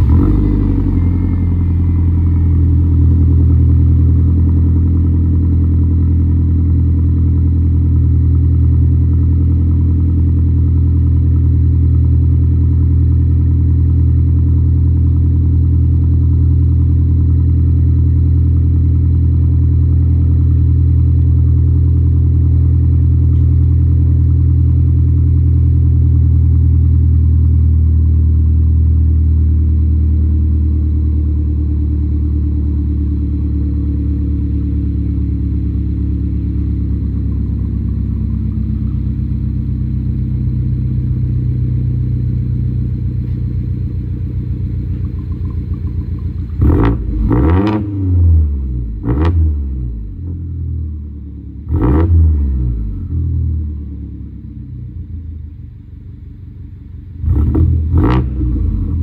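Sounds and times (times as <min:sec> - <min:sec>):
car engine starting and idling: 0:00.0 - 0:59.0.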